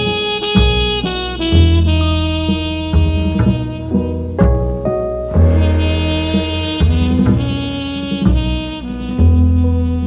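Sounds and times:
jazz trumpet sustained notes: 0:00.0 - 0:10.0
walking upright bass: 0:00.0 - 0:10.0.

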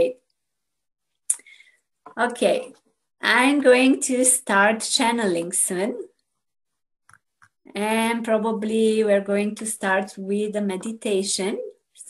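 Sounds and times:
woman speaking: 0:00.0 - 0:00.2, 0:02.1 - 0:06.2, 0:07.7 - 0:11.8.

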